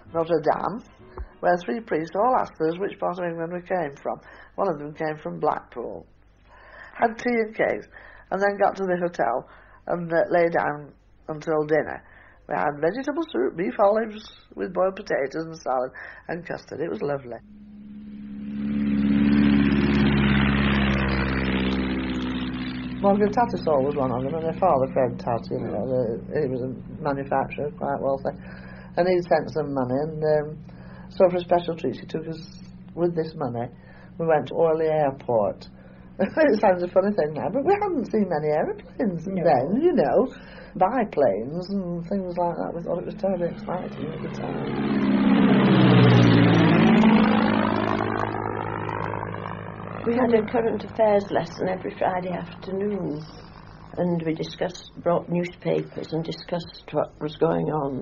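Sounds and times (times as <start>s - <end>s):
engine drone: 0.0s - 3.0s, 17.2s - 58.0s
aircraft flying over: 0.0s - 4.9s, 16.0s - 58.0s.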